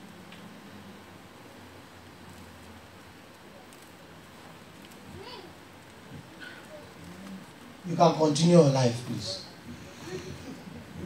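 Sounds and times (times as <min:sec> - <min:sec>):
faint voice-like sounds: 0:03.3 - 0:08.0, 0:08.9 - 0:11.0
man speaking into a microphone: 0:07.8 - 0:09.6.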